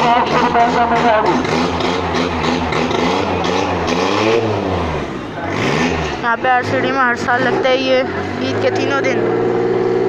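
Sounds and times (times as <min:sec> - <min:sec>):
voices: 0:00.0 - 0:03.9, 0:05.1 - 0:09.3
vehicle engine revving: 0:00.0 - 0:10.0.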